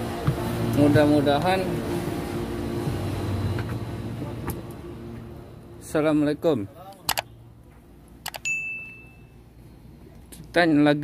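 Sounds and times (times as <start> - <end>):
bright metallic ding: 8.4 - 9.4.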